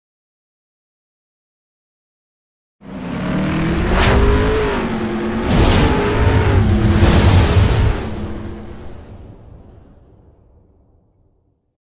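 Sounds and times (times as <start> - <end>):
car engine revving: 2.8 - 9.2
whooshes sweeping past: 3.5 - 9.8.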